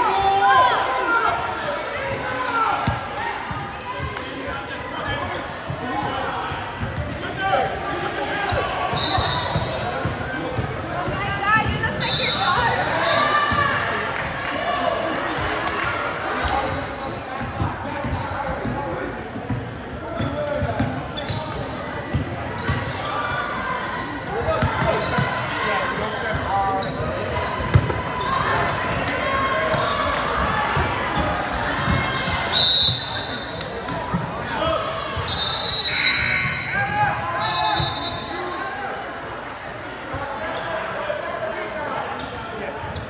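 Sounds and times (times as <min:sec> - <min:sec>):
sneaker squeaks: 0:01.6 - 0:02.2, 0:02.8 - 0:15.0, 0:16.4 - 0:34.3, 0:35.1 - 0:39.2, 0:40.1 - 0:43.0.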